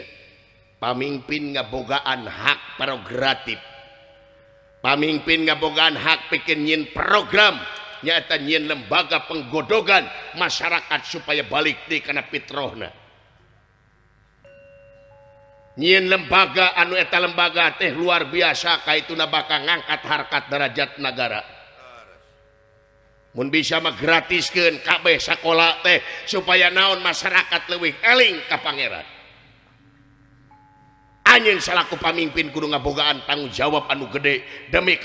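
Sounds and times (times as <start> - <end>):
metal gamelan note ringing: 14.4 - 16.3, 28.7 - 32.9.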